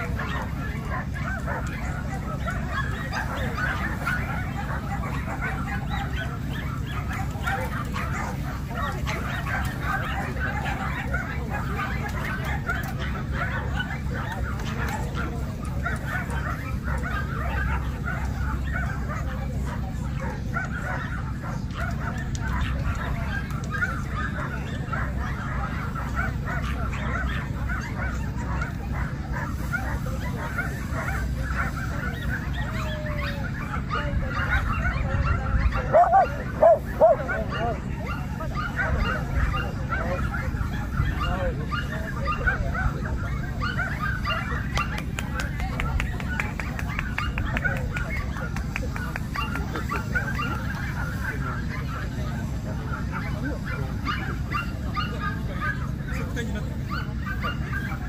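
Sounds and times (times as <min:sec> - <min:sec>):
dogs barking: 0:00.0 - 0:58.0
people talking: 0:00.0 - 0:58.0.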